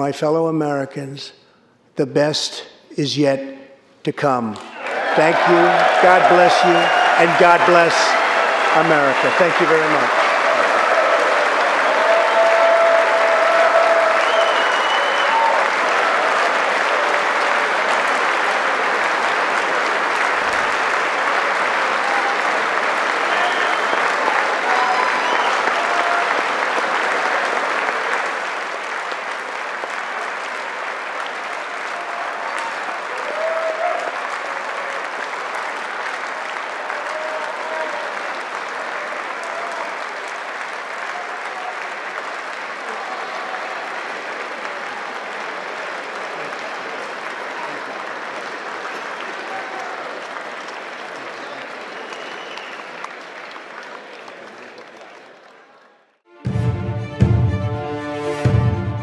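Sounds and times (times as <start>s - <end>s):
audience applause: 4.7s - 56.3s.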